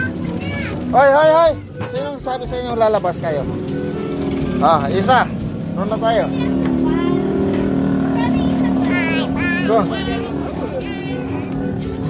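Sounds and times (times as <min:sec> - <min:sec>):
engine running: 0:00.0 - 0:12.0
people's voices: 0:00.0 - 0:12.0.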